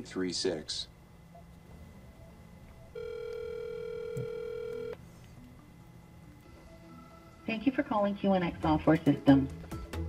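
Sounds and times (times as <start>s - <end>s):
telephone ringback tone: 2.9s - 5.0s.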